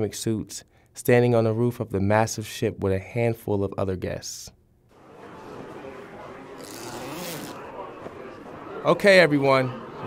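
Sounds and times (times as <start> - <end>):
faint background voices: 4.9 - 10.0
zipper pulled shut: 6.6 - 7.6.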